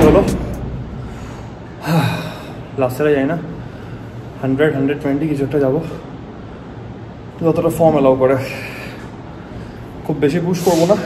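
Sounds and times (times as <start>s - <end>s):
man speaking: 0.0s - 0.6s
man breathing in: 0.9s - 2.7s.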